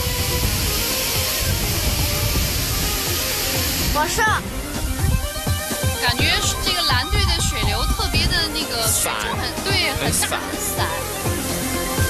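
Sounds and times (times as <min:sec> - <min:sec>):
background music with beat: 0:00.0 - 0:12.0
water spray hissing: 0:00.0 - 0:12.0.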